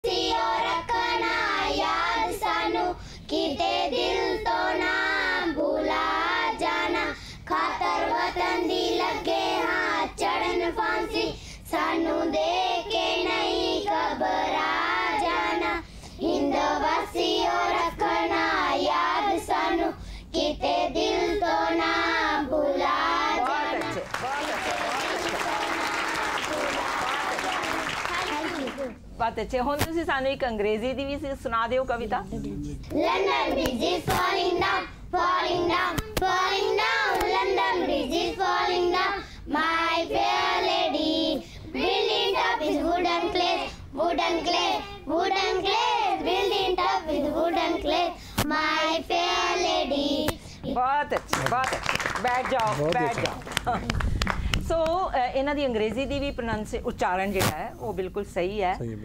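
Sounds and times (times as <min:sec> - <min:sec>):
applause: 0:23.4 - 0:29.0, 0:51.2 - 0:54.6.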